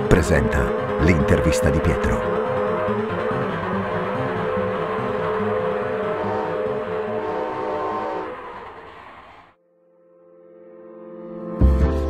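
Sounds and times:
low held chord: 0:00.0 - 0:08.7
cartoon train chugging: 0:00.0 - 0:09.5
train whistle: 0:00.3 - 0:09.5.

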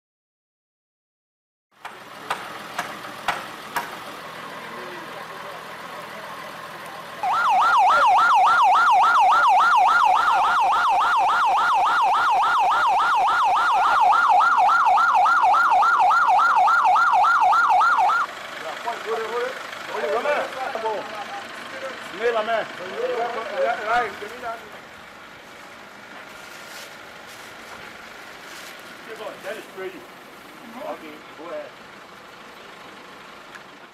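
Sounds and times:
ambulance siren yelping: 0:07.2 - 0:18.3.

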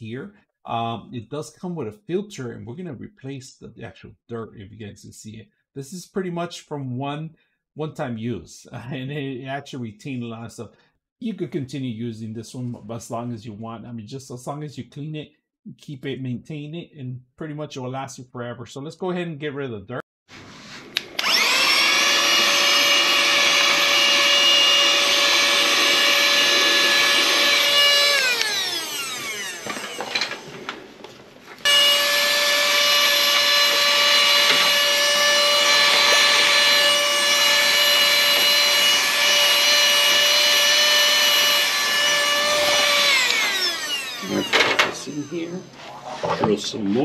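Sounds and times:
handheld vacuum motor whine: 0:21.0 - 0:31.0, 0:31.6 - 0:45.8.

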